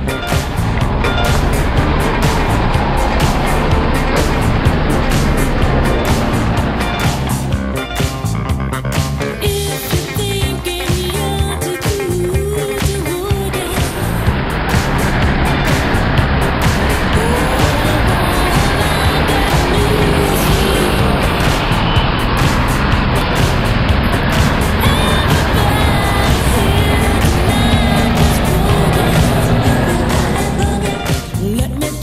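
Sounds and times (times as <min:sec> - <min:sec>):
cars driving by: 0:00.0 - 0:31.6
background music: 0:00.0 - 0:32.0.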